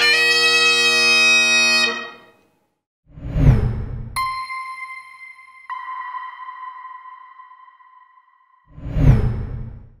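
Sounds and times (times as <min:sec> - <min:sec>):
bell-like electronic chime: 0:04.2 - 0:08.8.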